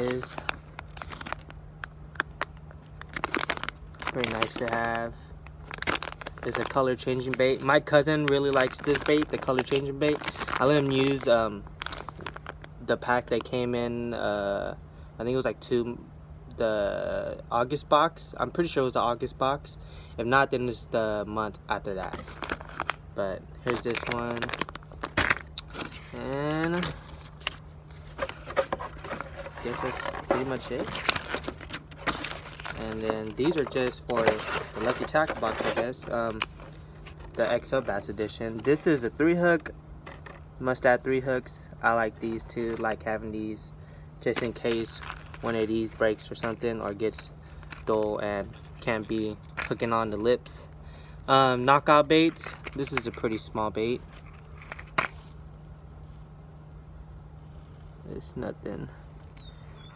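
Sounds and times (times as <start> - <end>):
plastic packaging crinkling and clicking: 0.0 - 12.7, 22.0 - 23.0, 23.6 - 38.8, 39.6 - 40.4, 44.2 - 49.9, 52.1 - 53.4, 54.0 - 55.3
faint steady low hum: 0.0 - 59.9.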